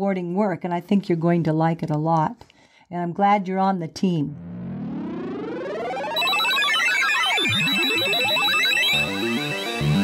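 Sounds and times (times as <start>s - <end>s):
gliding synth tones sweeping: 4.4s - 9.8s
high beeping tone: 4.4s - 10.0s
synth music with stepped notes: 4.4s - 10.0s.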